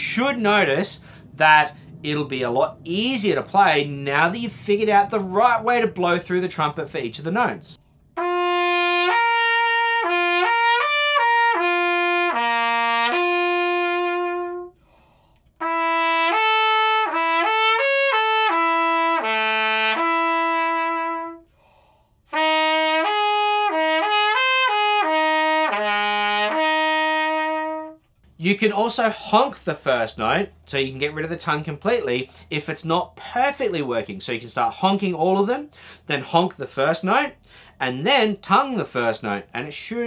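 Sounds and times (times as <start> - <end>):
player breathing: 1.0 - 2.0, 14.8 - 15.6, 21.5 - 22.3, 35.7 - 36.1, 37.4 - 37.8
trumpet playing lip slurs: 8.1 - 21.6, 22.2 - 28.3.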